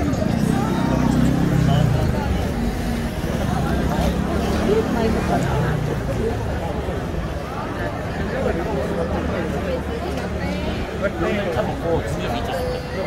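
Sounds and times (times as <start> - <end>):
crowd babble: 0.0 - 13.0
low rumble of traffic: 0.0 - 13.0.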